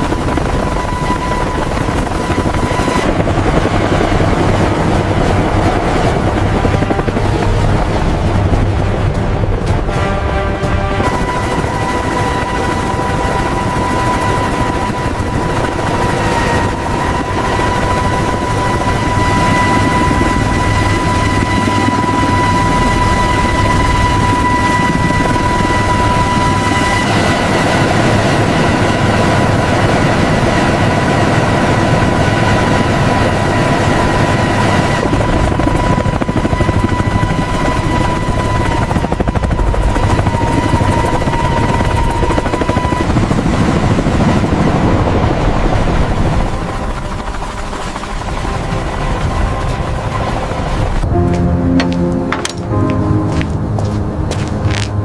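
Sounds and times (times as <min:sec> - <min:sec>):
helicopter rotor and engine noise: 0:00.0 - 0:55.0
high turbine whine: 0:00.0 - 0:55.0.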